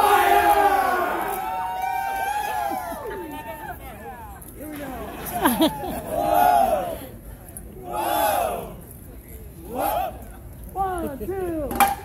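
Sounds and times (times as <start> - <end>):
group of voices shouting: 0.0 - 3.7.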